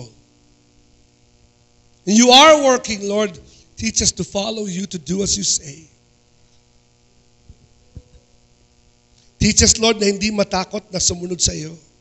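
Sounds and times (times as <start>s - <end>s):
electrical mains hum: 0.0s - 12.0s
faint low thumps: 7.4s - 8.4s.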